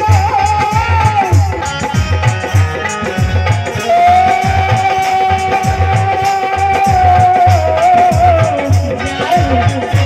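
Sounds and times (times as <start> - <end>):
drum beating steady pulse: 0.0 - 10.0.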